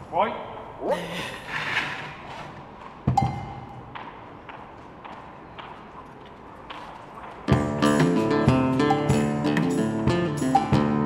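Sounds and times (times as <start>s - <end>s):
plucked guitar notes: 3.1s - 3.6s, 7.5s - 11.0s.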